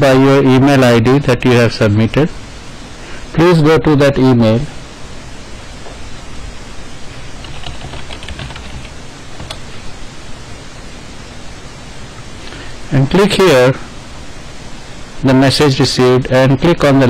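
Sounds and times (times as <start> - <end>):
background hiss: 0.0 - 17.0.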